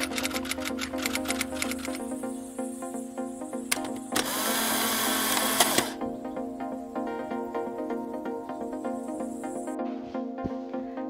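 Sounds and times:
intro music: 0.0 - 11.0
click: 0.1 - 2.0, 3.7 - 4.3.

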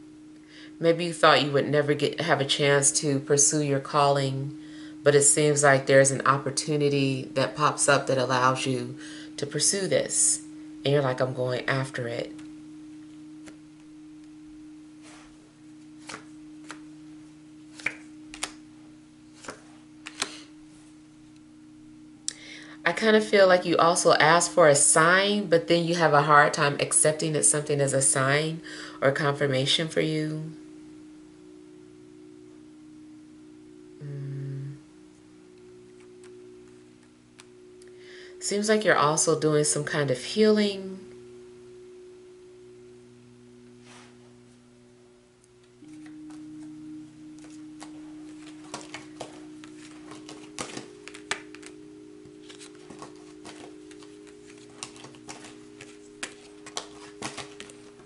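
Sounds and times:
faint low humming tone: 0.0 - 58.0.

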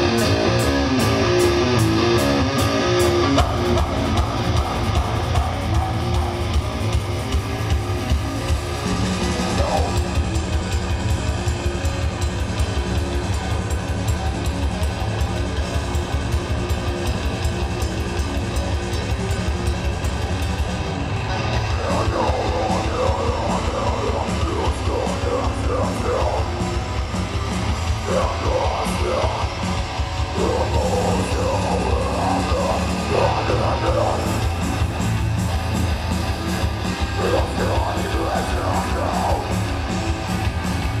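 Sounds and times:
bass guitar: 0.0 - 41.0
distorted electric guitars: 0.0 - 41.0
fast dense drumming: 0.0 - 41.0.

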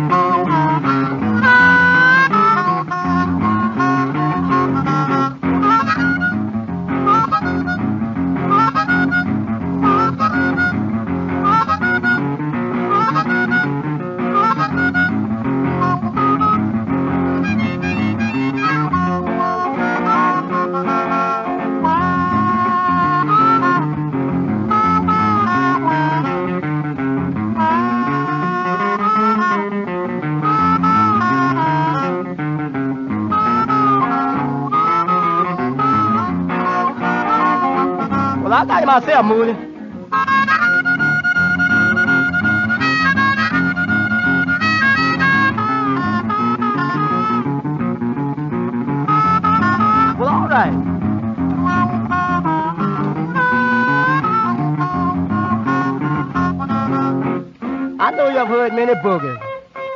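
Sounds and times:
blues harmonica riffs: 0.0 - 59.9
boogie guitar bass line: 0.0 - 59.9.

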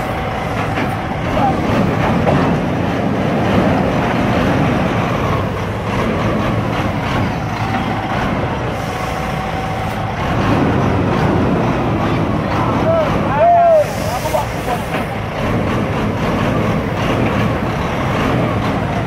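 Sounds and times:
diesel truck engine running: 0.0 - 19.0.

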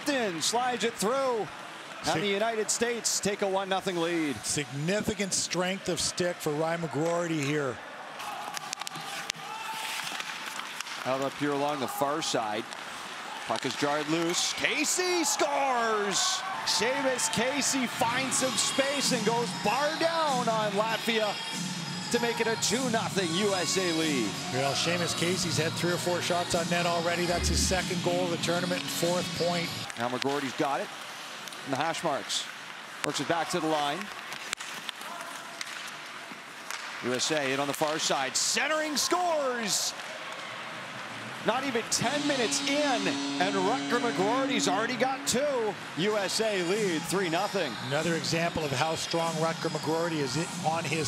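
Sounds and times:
skates scraping on ice: 8.5 - 11.4
hockey sticks and puck clicking: 8.5 - 11.8, 12.7 - 14.4, 34.0 - 38.0.

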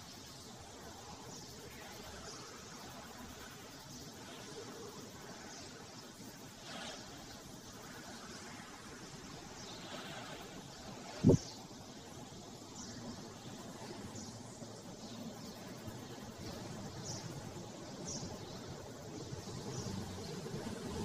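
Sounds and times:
steady hiss: 0.0 - 21.0.

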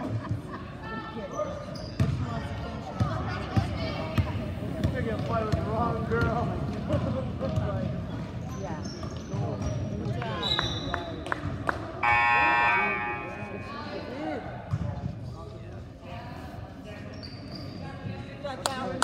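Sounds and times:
crowd chatter: 0.0 - 19.0
scoreboard buzzer: 12.0 - 14.0
referee's whistle: 12.0 - 14.1.

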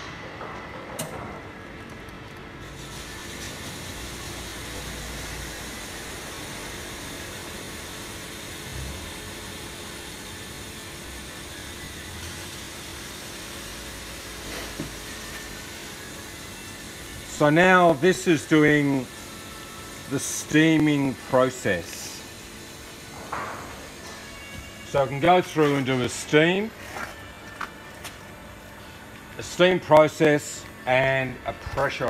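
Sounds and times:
steam hissing: 2.6 - 26.7.

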